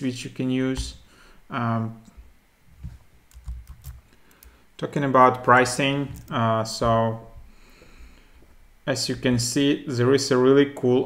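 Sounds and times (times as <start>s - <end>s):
computer keyboard keystrokes: 3.3s - 4.6s, 6.2s - 6.4s.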